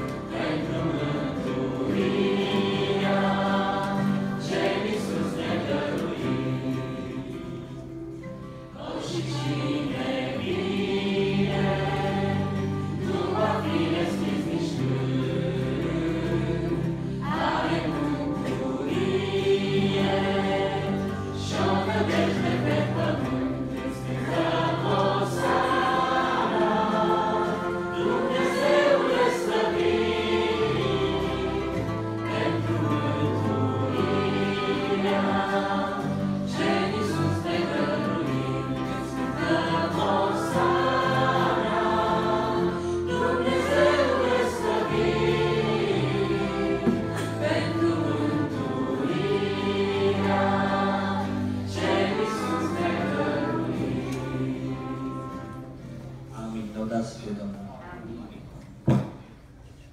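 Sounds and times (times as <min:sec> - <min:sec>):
instrumental accompaniment: 0:00.0 - 0:56.8
congregation singing a hymn: 0:00.0 - 0:57.5, 0:58.8 - 0:59.5.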